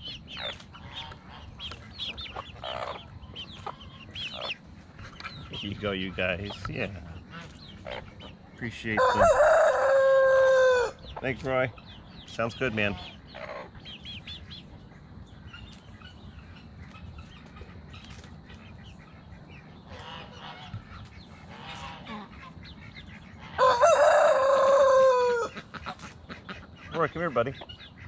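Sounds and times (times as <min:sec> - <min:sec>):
hens clucking quietly: 0:00.0 - 0:28.0
rooster crowing: 0:08.9 - 0:11.0, 0:23.6 - 0:25.6.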